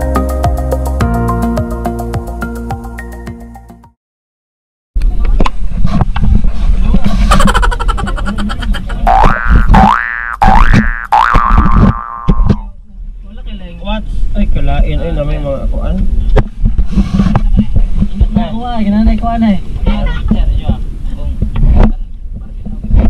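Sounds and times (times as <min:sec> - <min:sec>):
wind noise: 0:05.0 - 0:23.0
boat engine rumbling: 0:06.7 - 0:13.2
people talking: 0:06.8 - 0:09.4, 0:17.3 - 0:23.0
water noise: 0:08.4 - 0:12.6.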